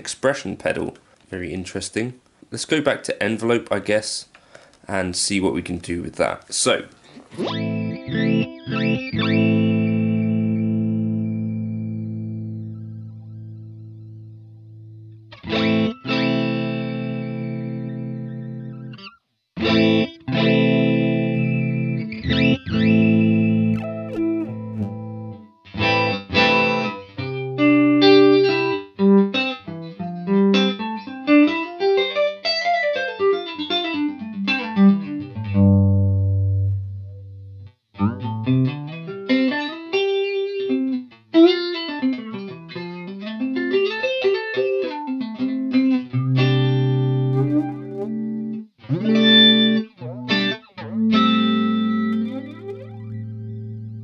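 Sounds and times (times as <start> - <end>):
electric guitar with flanger: 7.1 - 54.0.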